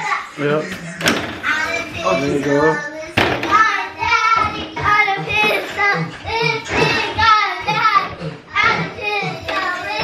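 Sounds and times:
child singing: 1.4s - 10.0s.

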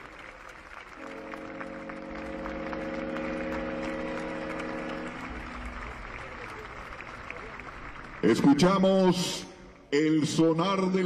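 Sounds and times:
ship horns sounding a chord: 0.9s - 6.2s.

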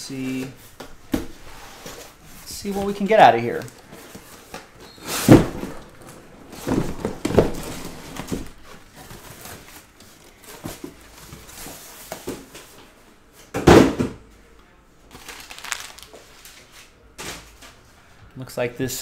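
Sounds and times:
cardboard thumps and scuffs: 4.0s - 9.6s.

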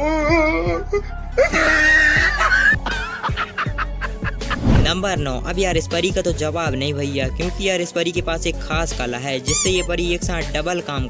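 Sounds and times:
background music: 0.0s - 11.0s
man laughing: 1.4s - 4.5s.

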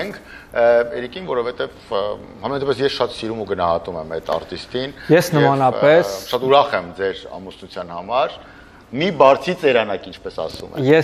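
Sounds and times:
man speaking: 0.0s - 11.0s.

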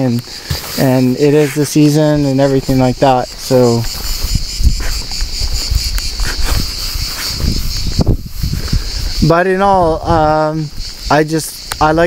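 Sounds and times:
high insect chirring: 0.0s - 12.0s.

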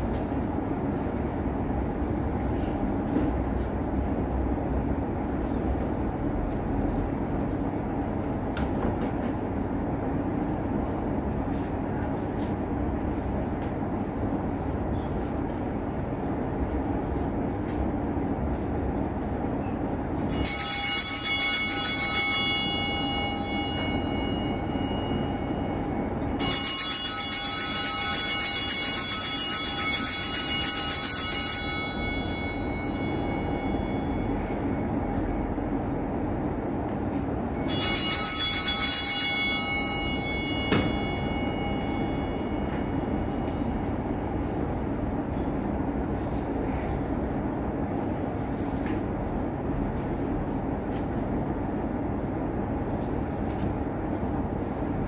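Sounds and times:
steady low hum: 0.0s - 55.0s
altar bells ringing: 19.4s - 36.6s, 37.2s - 47.0s.

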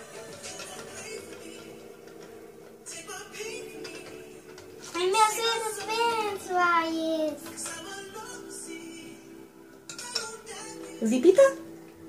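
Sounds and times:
child singing wordless notes: 4.8s - 8.4s.

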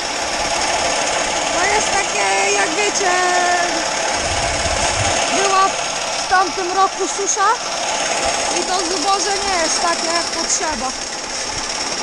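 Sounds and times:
grain pouring from auger spout: 0.0s - 12.0s.

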